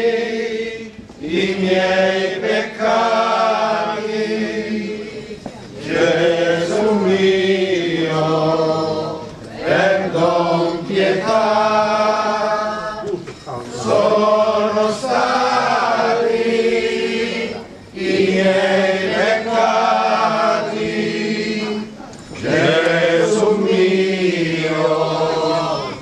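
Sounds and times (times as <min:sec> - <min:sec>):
men chanting a hymn: 0:00.0 - 0:26.0.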